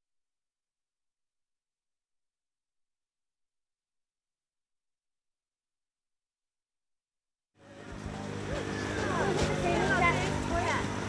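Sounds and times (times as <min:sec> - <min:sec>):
low engine-like hum: 0:07.6 - 0:11.0
people talking: 0:07.7 - 0:11.0.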